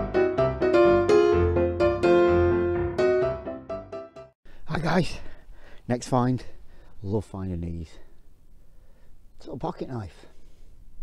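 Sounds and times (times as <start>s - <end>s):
piano background music: 0.0s - 4.4s.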